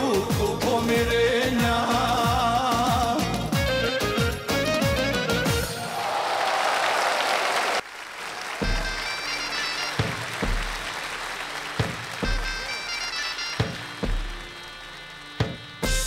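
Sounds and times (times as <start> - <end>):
instrumental folk-pop music: 0.0 - 5.8
applause: 5.8 - 16.0.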